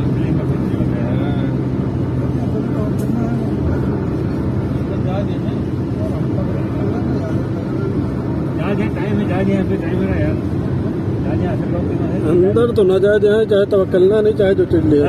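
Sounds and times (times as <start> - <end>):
car engine and road noise: 0.0 - 15.0
faint voices talking: 0.0 - 15.0.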